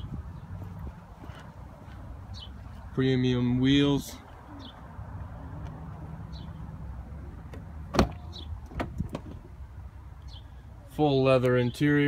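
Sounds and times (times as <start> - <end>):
low outdoor rumble: 0.0 - 11.8.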